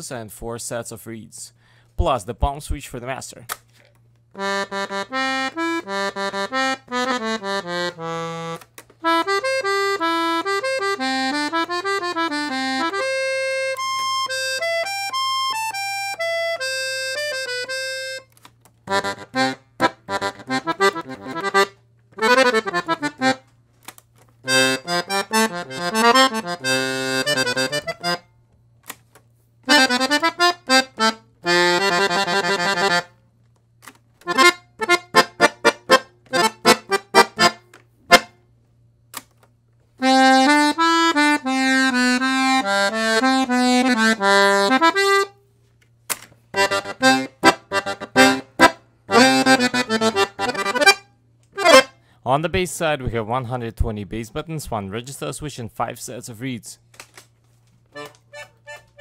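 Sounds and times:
accordion chords and melody: 4.3s - 28.3s, 29.6s - 33.2s, 33.8s - 38.5s, 40.0s - 45.4s, 46.5s - 52.0s, 57.9s - 59.0s.

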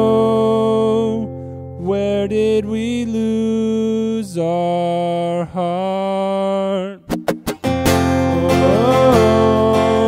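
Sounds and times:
man singing wordless notes: 0.0s - 7.2s, 8.1s - 10.0s
acoustic guitar chord ringing: 7.2s - 10.0s.

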